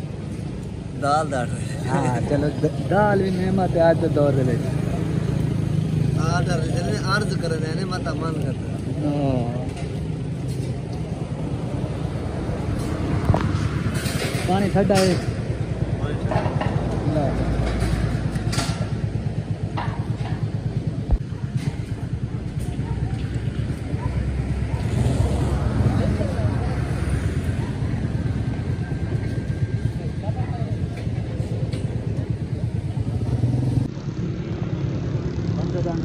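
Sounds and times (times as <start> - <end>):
low engine rumble: 0.0 - 36.0
people talking: 1.0 - 5.5, 6.1 - 10.0, 14.4 - 17.5, 20.5 - 33.2.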